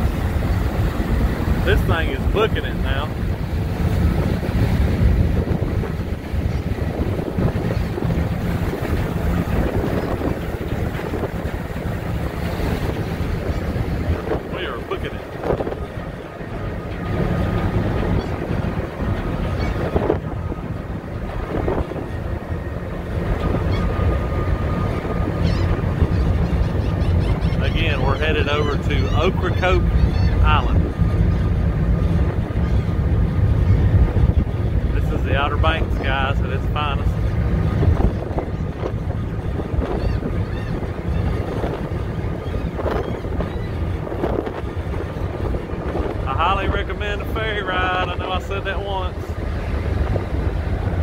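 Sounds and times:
ferry engines droning: 0.0 - 51.0
propeller wash rushing: 0.0 - 51.0
wind buffeting microphone: 0.0 - 51.0.

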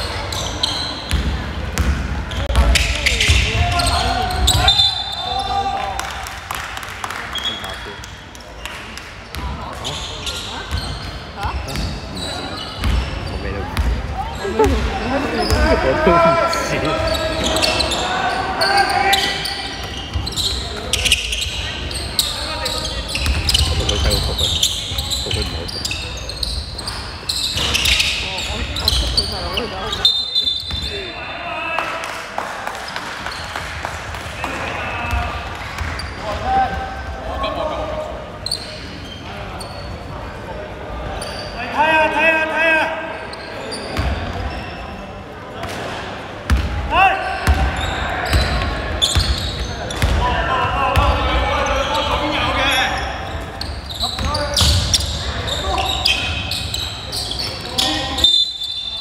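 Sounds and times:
basketball bouncing on wooden court: 1.1 - 4.6, 12.8 - 13.1, 13.7 - 14.0, 23.2 - 24.1, 46.5 - 46.8, 47.4 - 50.2
players calling out: 9.9 - 26.6, 46.8 - 58.8.

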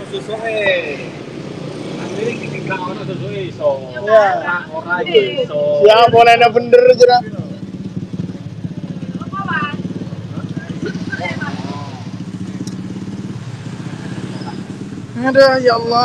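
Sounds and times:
faint voices: 1.9 - 13.4
engine idling: 2.2 - 16.0.

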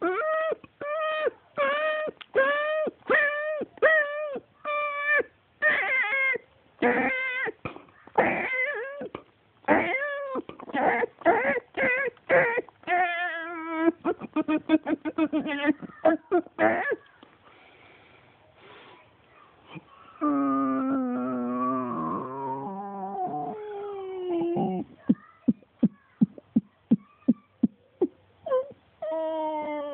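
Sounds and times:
cat yowling: 0.0 - 7.6, 8.2 - 9.1
animal crying: 0.0 - 17.1, 20.2 - 25.0.

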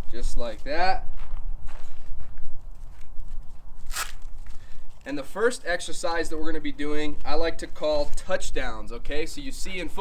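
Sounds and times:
footsteps on dirt: 0.0 - 8.7
sharp scrape: 3.8 - 4.4.

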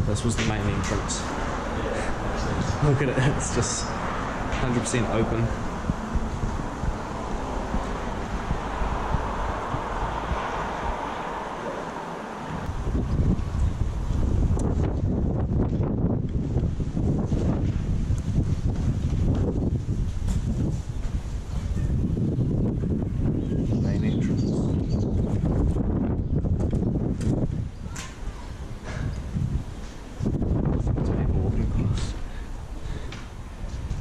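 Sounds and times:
wind buffeting microphone: 0.0 - 11.7, 12.3 - 34.0.

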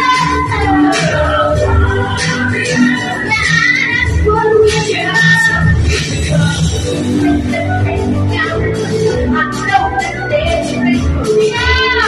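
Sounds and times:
girl singing into a microphone: 0.0 - 5.8, 9.4 - 12.0
backing music: 0.0 - 12.0.

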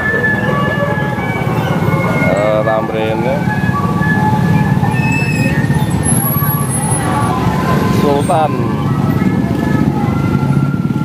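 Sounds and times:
car engines running: 0.0 - 11.0
motorcycle engines running: 0.0 - 11.0
music: 0.0 - 11.0
voices: 0.0 - 11.0.

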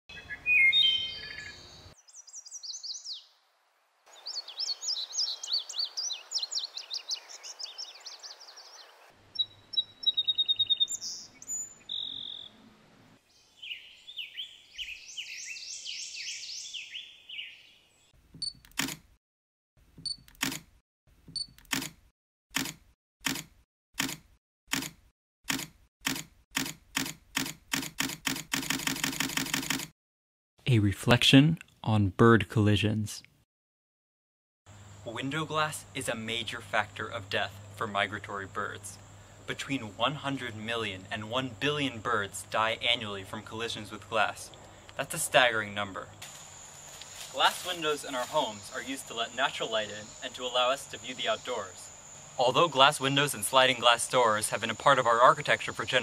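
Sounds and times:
wild birds singing: 0.1 - 3.4, 4.1 - 18.2, 34.7 - 56.0
sharp clicks speeding up: 22.6 - 29.9.

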